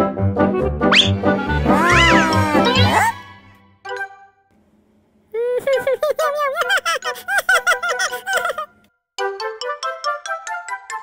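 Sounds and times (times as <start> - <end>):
cartoon kitten giggling: 1.7 - 3.2, 5.4 - 8.8.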